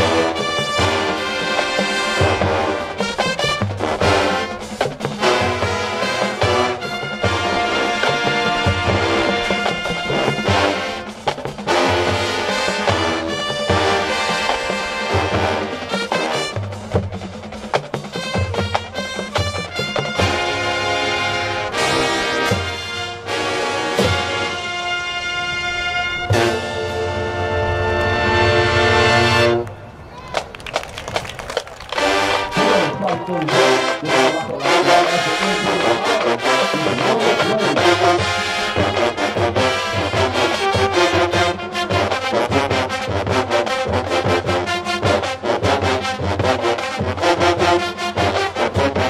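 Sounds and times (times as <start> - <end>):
brass section sustained chord: 0.0 - 16.6, 19.7 - 29.8, 32.0 - 49.0
marching band playing: 0.0 - 49.0.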